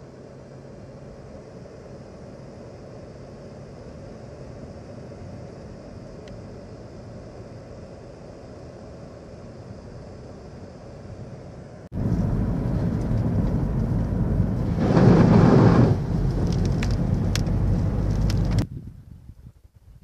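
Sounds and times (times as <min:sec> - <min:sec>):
car road noise from inside: 0:11.9 - 0:18.7
water spraying under tyres: 0:12.0 - 0:18.6.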